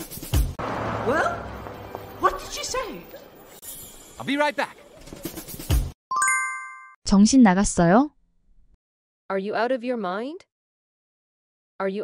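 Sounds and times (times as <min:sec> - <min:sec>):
noisy film soundtrack: 0:00.0 - 0:05.9.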